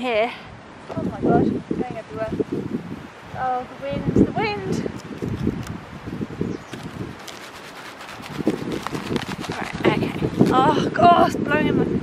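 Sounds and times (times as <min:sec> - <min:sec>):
wind rumble on microphone: 0:00.0 - 0:12.0
seeds rattling in cardboard box: 0:06.7 - 0:10.5.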